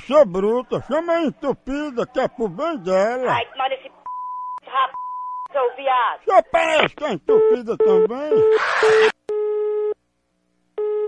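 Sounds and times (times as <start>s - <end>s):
telephone busy signal beeps: 4.1s - 5.5s, 7.4s - 10.0s, 10.8s - 11.0s.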